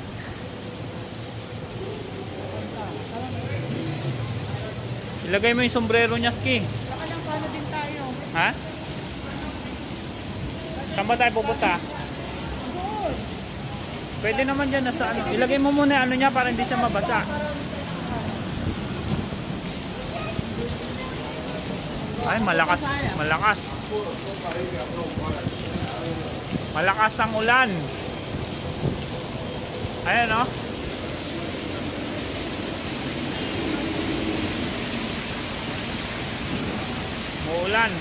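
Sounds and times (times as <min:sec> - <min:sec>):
heavy rain on pavement: 0:00.0 - 0:38.0
traffic on wet road: 0:00.0 - 0:38.0.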